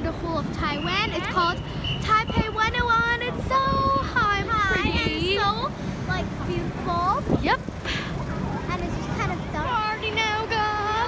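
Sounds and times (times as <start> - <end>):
girl singing: 8.8 - 11.0.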